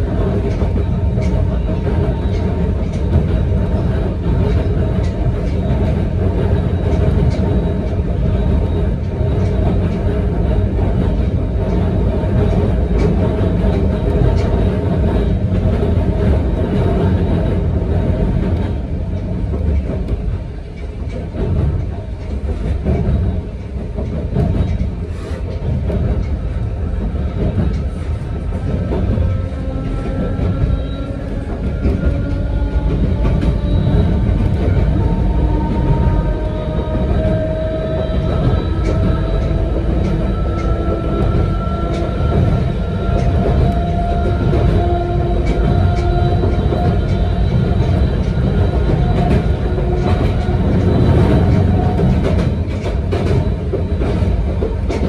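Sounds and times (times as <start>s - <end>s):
railcar wheels rumbling: 0.0s - 55.0s.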